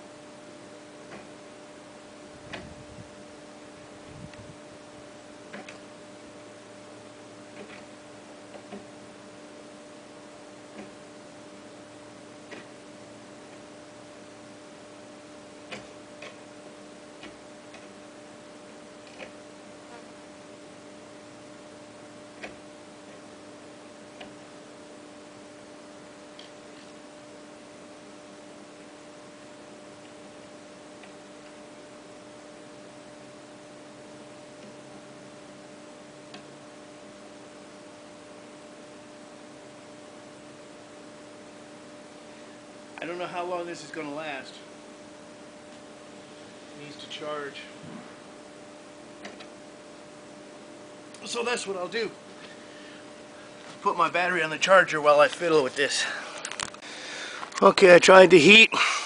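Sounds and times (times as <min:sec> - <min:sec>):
low even hum: 0:00.0 - 0:59.0.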